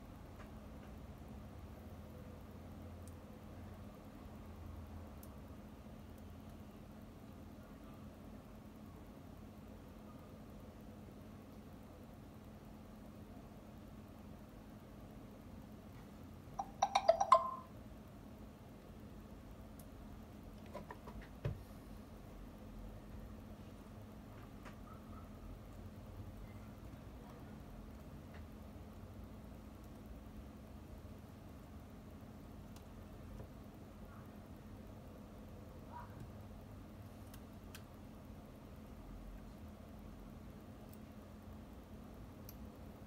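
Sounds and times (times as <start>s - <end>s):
quiet steady hum: 0.0s - 43.0s.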